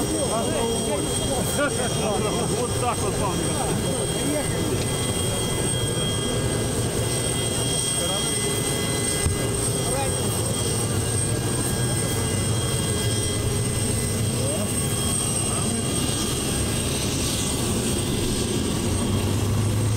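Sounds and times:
aircraft engine droning: 0:00.0 - 0:19.9.

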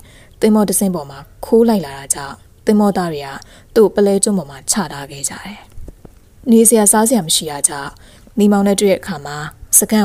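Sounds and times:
woman narrating: 0:00.0 - 0:05.8, 0:06.4 - 0:10.0.

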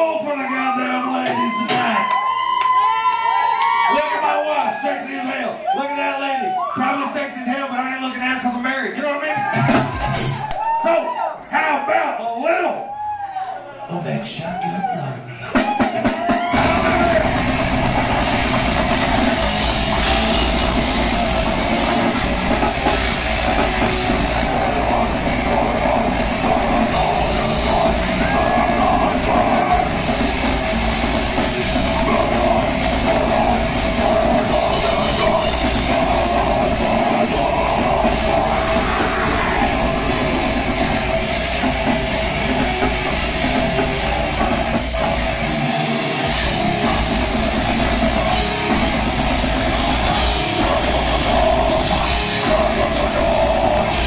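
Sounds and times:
death metal band playing live: 0:09.4 - 0:10.8, 0:15.5 - 0:54.0.

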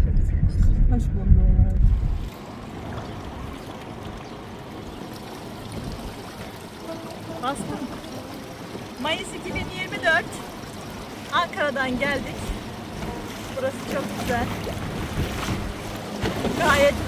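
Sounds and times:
car cabin road rumble: 0:00.0 - 0:17.0
river water rushing: 0:02.3 - 0:17.0.

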